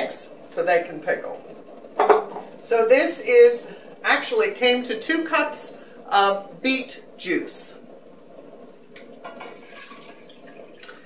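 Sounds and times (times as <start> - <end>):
liquid trickling into a saucepan: 9.2 - 11.0.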